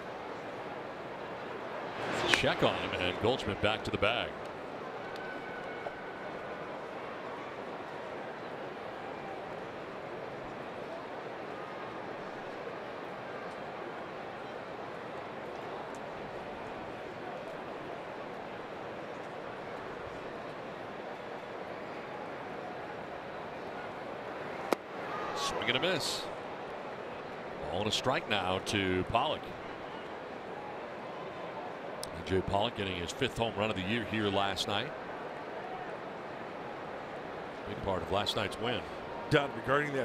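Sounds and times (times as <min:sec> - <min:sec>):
murmur of crowd: 0:00.0 - 0:40.0.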